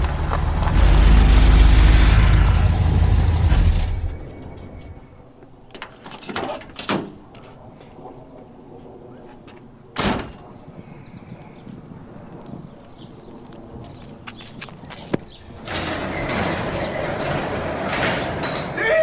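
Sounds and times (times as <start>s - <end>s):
loud rough clattering: 15.6s - 18.8s.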